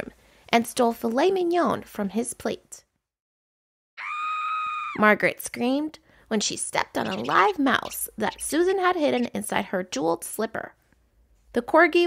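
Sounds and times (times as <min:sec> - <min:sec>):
high-pitched scream: 0:04.0 - 0:05.0.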